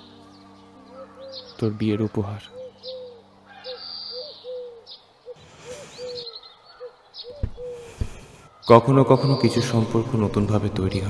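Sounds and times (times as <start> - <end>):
high bird chirps: 0.0 - 9.9
bird cooing: 0.9 - 1.6, 2.5 - 8.6
soft rustling: 7.4 - 8.5.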